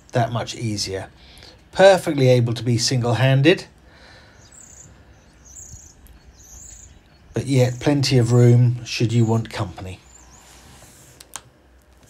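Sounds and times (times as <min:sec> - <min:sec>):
faint high chirp: 0:04.3 - 0:08.4, 0:09.1 - 0:10.6
sharp clicks: 0:11.2 - 0:12.0.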